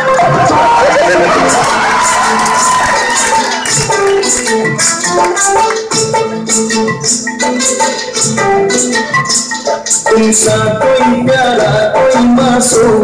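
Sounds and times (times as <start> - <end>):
loud dance music: 0.0 - 13.0.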